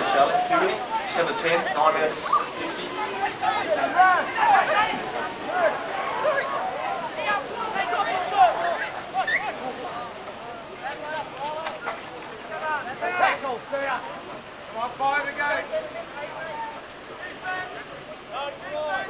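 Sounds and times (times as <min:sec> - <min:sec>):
spectators calling out and talking: 0:00.0 - 0:19.0.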